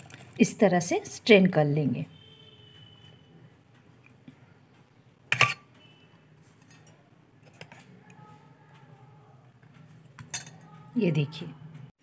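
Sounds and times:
steel kitchenware clinking: 5.3 - 8.1, 10.2 - 10.8.

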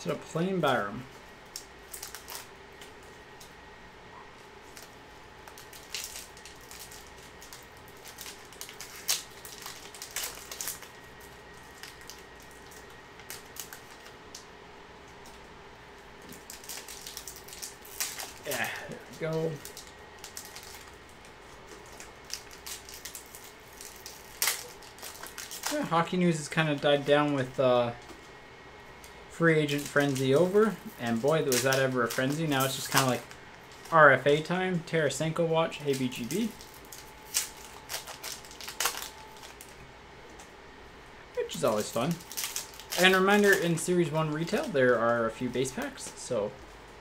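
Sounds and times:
faint steady hum: 0.0 - 47.0
foil wrapper crinkling and ripping: 0.4 - 3.5, 4.6 - 14.5, 16.2 - 27.6, 29.0 - 40.5, 41.3 - 46.4.

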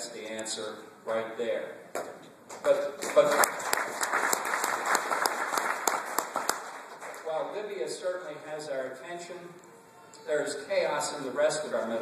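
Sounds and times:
audience applause: 3.0 - 7.3.

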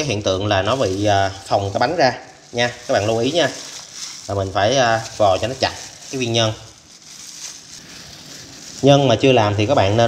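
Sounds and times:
plastic glove crinkling: 0.0 - 10.0.

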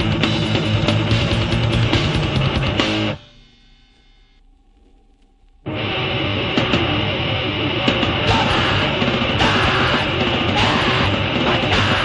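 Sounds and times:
fast distorted rock music: 0.0 - 4.0, 5.7 - 12.0
electric guitar chord ringing: 5.7 - 12.0.

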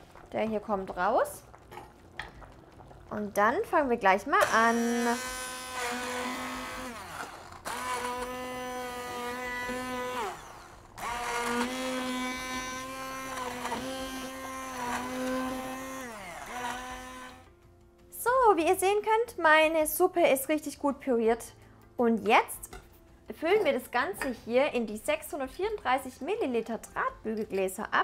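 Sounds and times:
stick blender motor whining: 4.4 - 17.5.

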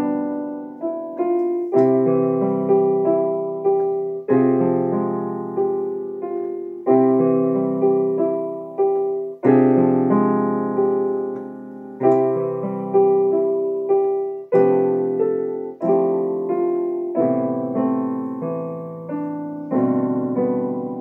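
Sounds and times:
slow digital piano chords: 0.0 - 21.0.

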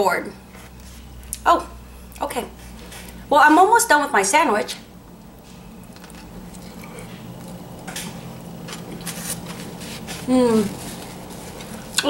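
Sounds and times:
person chewing food: 5.1 - 12.0.

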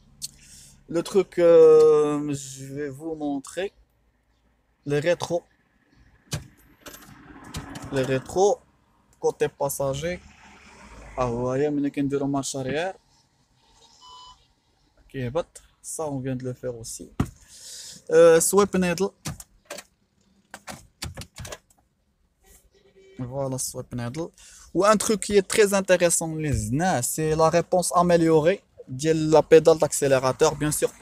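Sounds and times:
sharp clicks in car cabin: 19.2 - 21.8.

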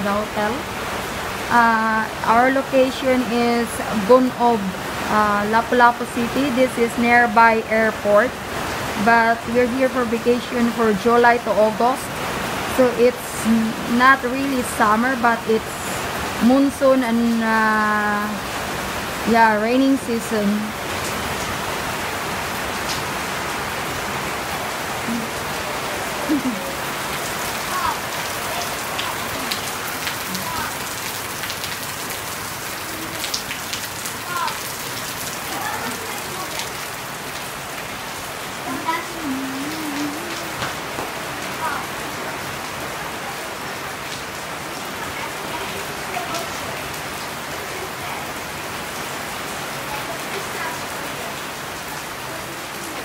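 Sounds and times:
rain falling on foliage: 0.0 - 53.0.

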